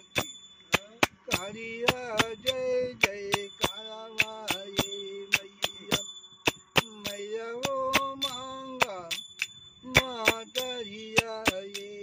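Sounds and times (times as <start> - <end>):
hand cymbals clinking: 0.0 - 12.0
man singing: 0.8 - 6.1, 6.8 - 9.2, 9.9 - 12.0.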